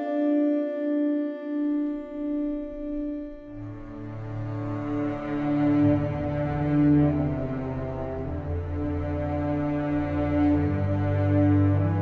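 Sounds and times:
bowed strings chord: 1.6s - 12.0s.

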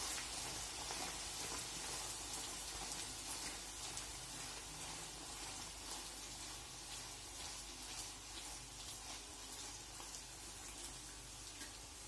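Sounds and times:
dough sizzling in hot oil: 0.0s - 12.0s
oil bubbling and crackling: 0.0s - 12.0s.

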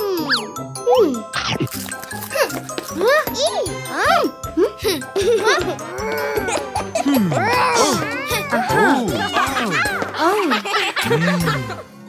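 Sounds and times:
light cartoon background music: 0.0s - 12.0s.

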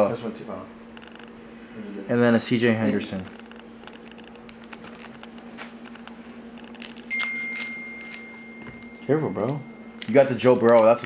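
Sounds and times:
steady low hum: 0.0s - 11.0s
foil pack crinkling: 3.2s - 11.0s
foil pack ripping: 3.7s - 8.4s
thin high tone: 7.0s - 11.0s.

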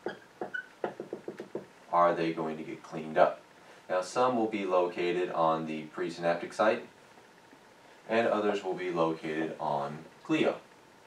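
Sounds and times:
marker squeak: 0.0s - 1.1s
marker tapping on whiteboard: 0.0s - 1.7s.

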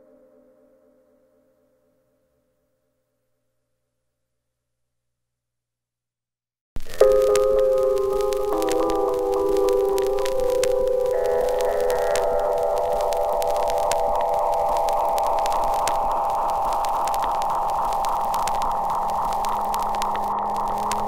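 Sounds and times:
faint clicks: 6.8s - 21.0s.

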